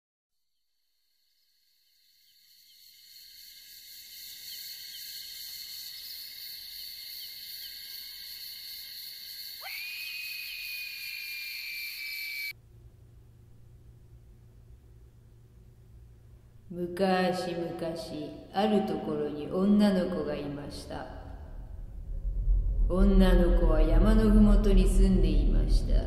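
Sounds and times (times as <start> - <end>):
high-pitched insect-like drone: 0.9 - 12.5
low hum: 12.5 - 18.6, 19.4 - 26.0.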